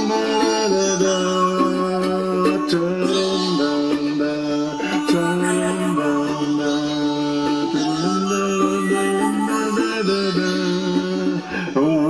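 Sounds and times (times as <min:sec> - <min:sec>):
man singing wordless melody: 0:00.0 - 0:12.0
toy ukulele strummed: 0:00.0 - 0:12.0.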